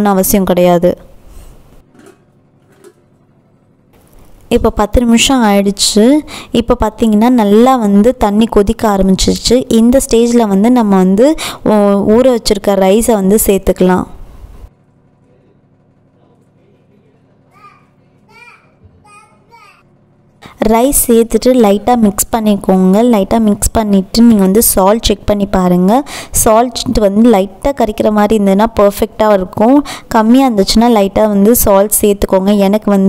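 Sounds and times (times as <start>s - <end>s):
low steady hum: 0.0s - 33.0s
faint child calling: 17.4s - 19.8s.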